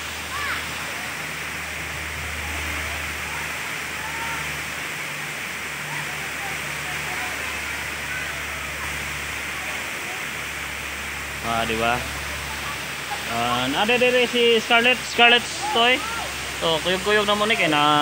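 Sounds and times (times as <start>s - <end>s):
waterfall rushing over rocks: 0.0s - 18.0s
faint distant voices: 0.3s - 13.8s.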